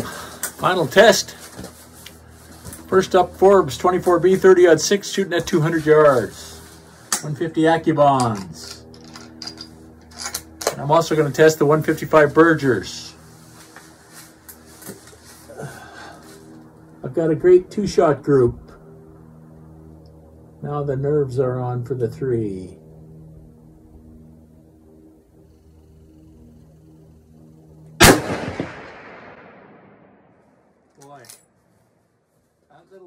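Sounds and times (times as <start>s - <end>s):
low steady hum: 0.0s - 33.0s
rifle handling clicks and knocks: 8.2s - 10.8s
rifle shot echoing: 28.0s - 30.4s.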